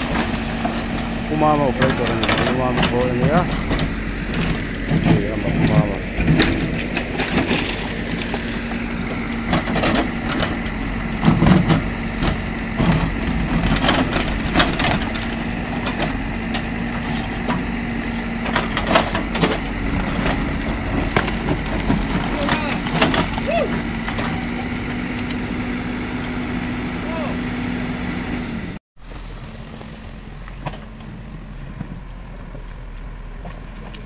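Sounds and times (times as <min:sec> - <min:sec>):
rock cracking and clattering: 0:00.0 - 0:17.7, 0:18.3 - 0:25.4
diesel engine running: 0:00.0 - 0:34.0.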